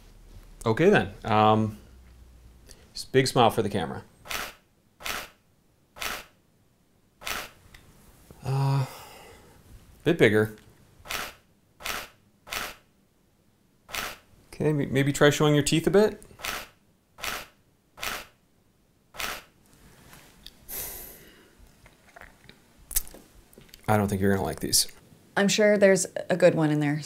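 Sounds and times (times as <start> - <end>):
camera shutter snapping: 4.3 - 5.4, 6.0 - 6.4, 7.2 - 7.6, 11.0 - 12.9, 13.9 - 14.2, 16.4 - 18.4, 19.2 - 19.5.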